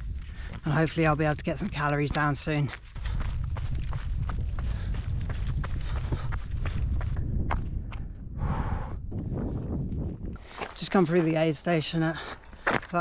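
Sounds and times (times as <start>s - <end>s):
wind rumble on microphone: 0.0s - 11.3s
running footsteps on gravel: 0.0s - 13.0s
breathy exhale: 8.4s - 9.0s.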